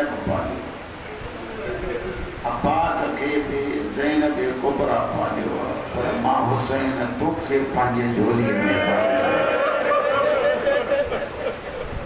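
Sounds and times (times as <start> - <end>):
man wailing into a microphone: 8.4 - 10.2.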